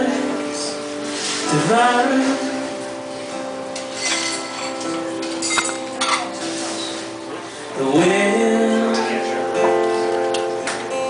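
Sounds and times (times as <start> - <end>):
person singing: 0.0 - 3.1, 7.4 - 11.0
acoustic guitar strummed: 0.0 - 11.0.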